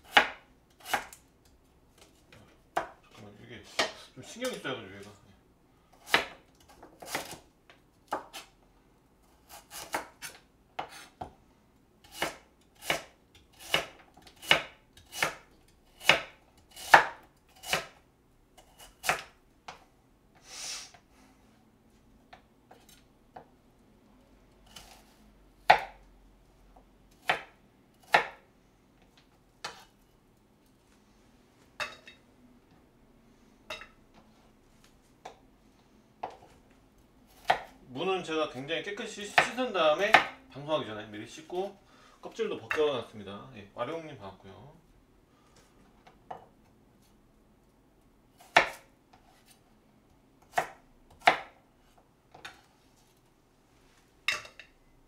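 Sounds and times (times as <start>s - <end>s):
knife chopping on plastic board: 6.0s - 7.4s, 12.0s - 18.0s, 18.8s - 19.8s, 25.6s - 26.0s, 27.2s - 28.4s, 37.4s - 37.7s, 39.3s - 40.3s, 48.4s - 48.8s, 50.4s - 51.6s.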